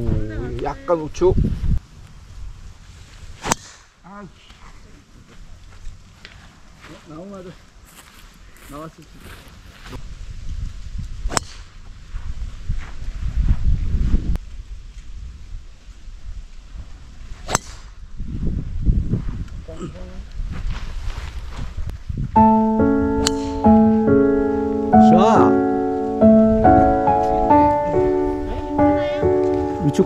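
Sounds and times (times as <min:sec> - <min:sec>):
golf club striking ball: 0:23.1 - 0:23.9.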